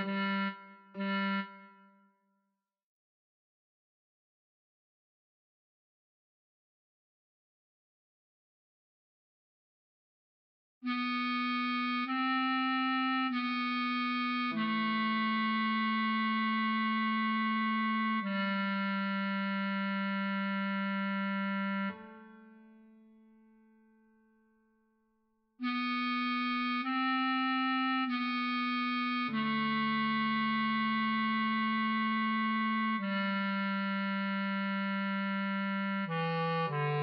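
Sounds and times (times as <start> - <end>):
bass clarinet long note: 0.0 - 1.9, 10.8 - 22.6, 25.6 - 37.0.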